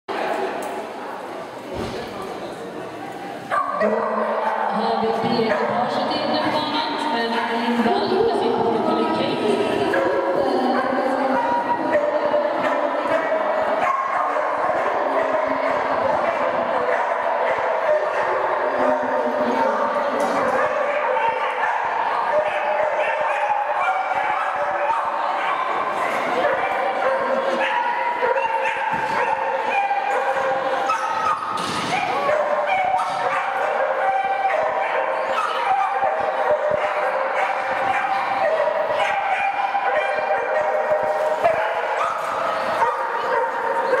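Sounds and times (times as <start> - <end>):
murmur of voices: 0.1 - 44.0
dogs barking: 3.5 - 6.0, 9.8 - 44.0.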